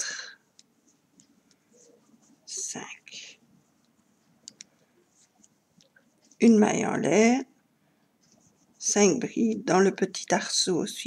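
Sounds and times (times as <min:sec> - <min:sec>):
soft whisper: 0:00.0 - 0:06.6.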